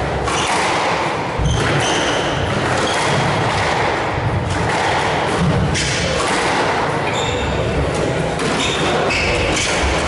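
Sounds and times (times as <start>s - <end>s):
squash ball thuds: 0.0s - 7.0s.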